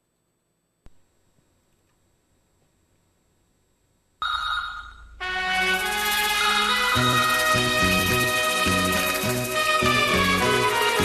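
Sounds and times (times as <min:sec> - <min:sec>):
high steady ringing tone: 0:04.2 - 0:05.2, 0:05.8 - 0:09.5.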